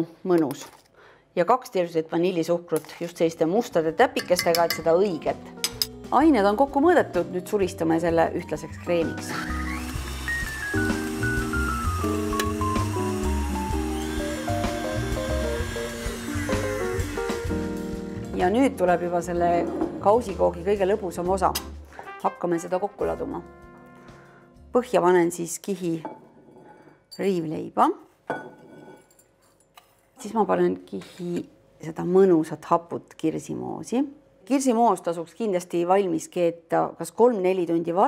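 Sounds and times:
metal spoon clinking on glass bowl: 4.2s - 5.9s
melody of short descending notes: 8.7s - 17.7s.

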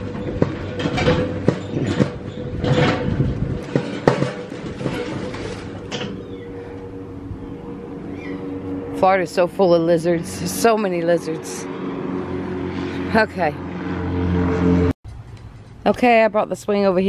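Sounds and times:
steady mechanical hum: 0.0s - 12.9s.

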